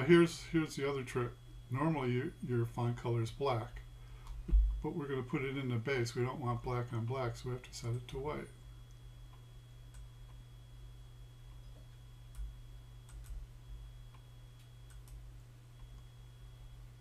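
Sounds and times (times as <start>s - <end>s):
steady low hum: 0.0s - 17.0s
computer mouse clicks: 8.9s - 10.4s, 11.5s - 13.4s, 14.1s - 15.2s.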